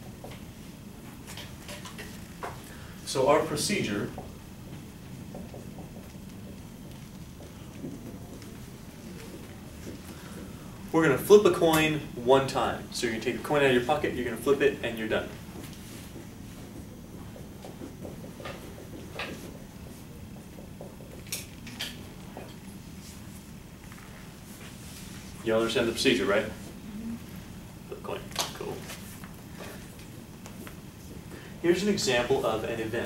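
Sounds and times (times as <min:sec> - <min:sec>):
low room rumble: 0:00.0 - 0:33.0.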